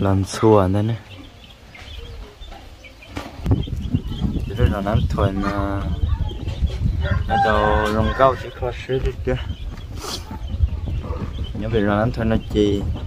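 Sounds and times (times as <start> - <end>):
steady low rumble: 3.4 - 13.0
rooster crowing: 7.0 - 8.6.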